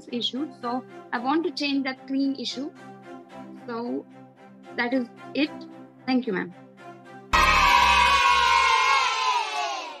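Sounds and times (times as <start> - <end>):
children cheering: 7.3 - 10.0.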